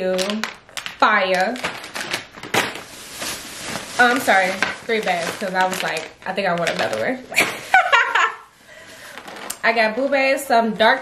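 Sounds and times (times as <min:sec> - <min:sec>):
sharp plastic crackle: 0:00.0 - 0:07.5, 0:09.0 - 0:09.8
plastic bags rustling and crinkling: 0:00.0 - 0:11.0.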